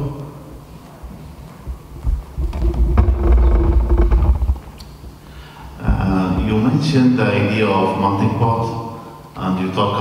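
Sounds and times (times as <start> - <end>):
steady hum: 0.0 - 10.0
microphone handling rumble and thumps: 1.6 - 5.2, 5.8 - 6.7.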